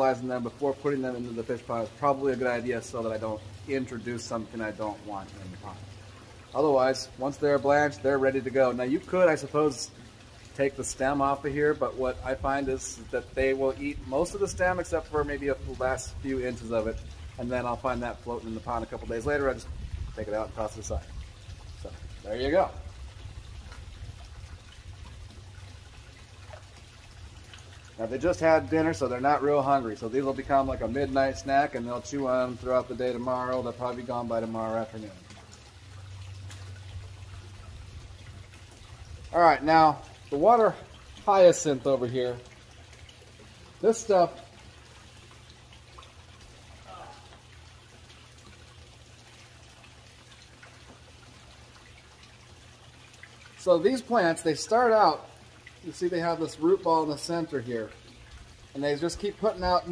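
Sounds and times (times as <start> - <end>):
water trickling into tank: 0.0 - 59.9.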